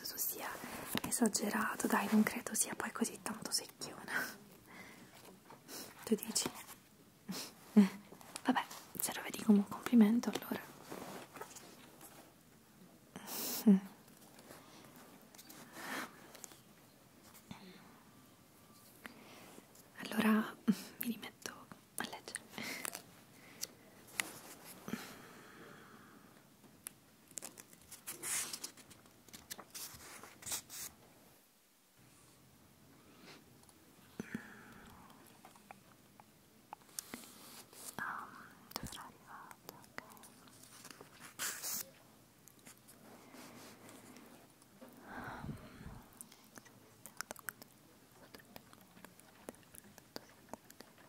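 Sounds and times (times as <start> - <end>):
person whispering: 0.0 - 4.5, 6.0 - 6.7, 8.4 - 10.8, 19.9 - 22.9, 37.9 - 40.4.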